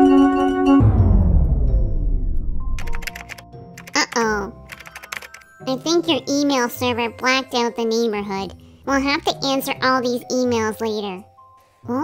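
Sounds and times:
rapid sharp clicks: 2.8s - 5.5s.

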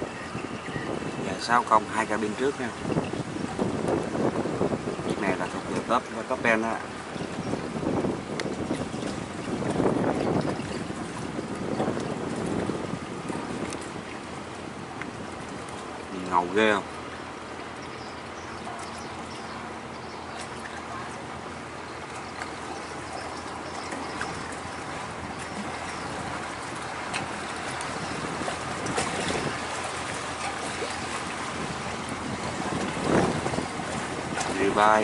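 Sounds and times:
barge engine and water wash: 0.0s - 35.0s.

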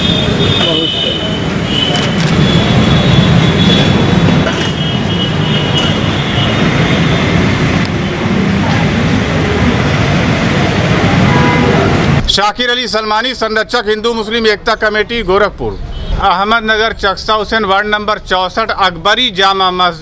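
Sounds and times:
low traffic rumble: 0.0s - 20.0s.

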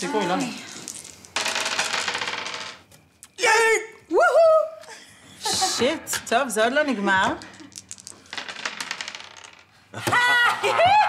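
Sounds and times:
dice rattling in a hand: 0.7s - 2.8s, 7.5s - 9.7s.

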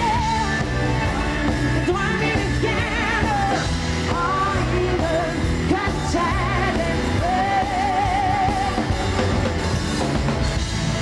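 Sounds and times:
woman singing with vibrato: 0.0s - 9.0s
live pop-rock band playing: 0.0s - 11.0s.

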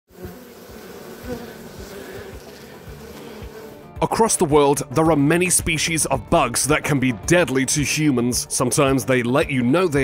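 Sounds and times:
bees buzzing: 0.1s - 5.2s.

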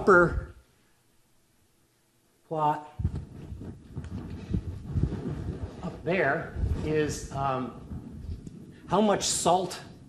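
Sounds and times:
low thumps and knocks: 3.0s - 9.5s.

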